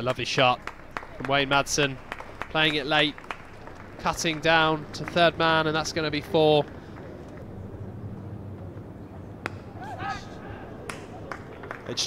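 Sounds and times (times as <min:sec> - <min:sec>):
low ambient hum: 0:00.0 - 0:12.0.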